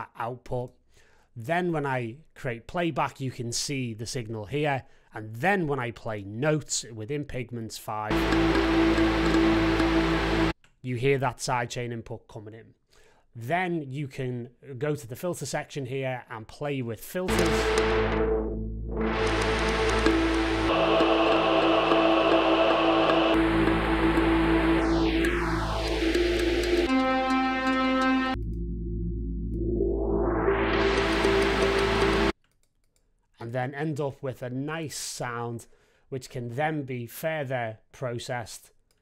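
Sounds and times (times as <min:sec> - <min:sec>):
synth held note: 0:08.1 - 0:10.5, 0:17.3 - 0:32.3
dense hissing wash: 0:19.7 - 0:24.8.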